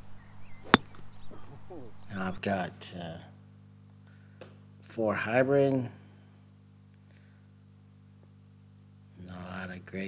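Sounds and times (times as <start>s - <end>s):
golf club striking ball: 0.6s - 1.2s.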